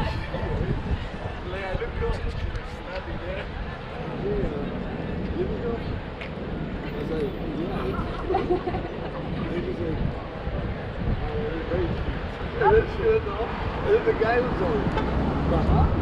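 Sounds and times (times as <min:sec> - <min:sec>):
people talking: 0:06.8 - 0:16.0.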